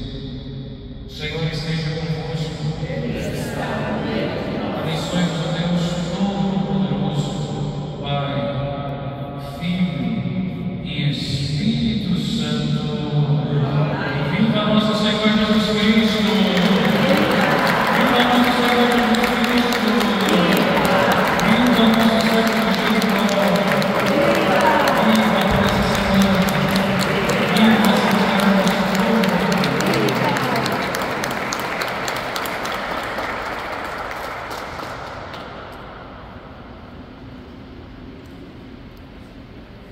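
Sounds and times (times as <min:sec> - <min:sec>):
congregation applauding: 0:13.6 - 0:35.9
voices singing held notes: 0:15.8 - 0:30.8.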